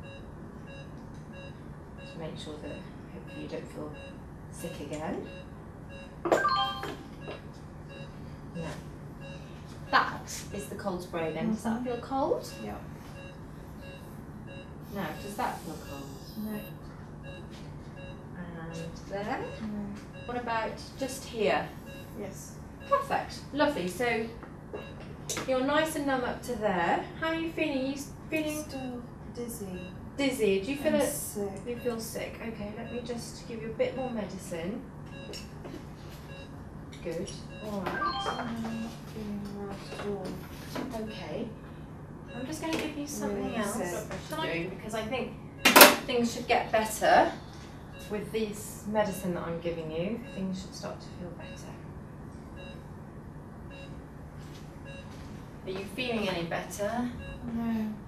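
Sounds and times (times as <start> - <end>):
patient monitor beeping: 0.0 - 25.3, 28.5 - 34.4, 35.0 - 56.2, 57.0 - 57.8
equipment hum: 0.0 - 58.0.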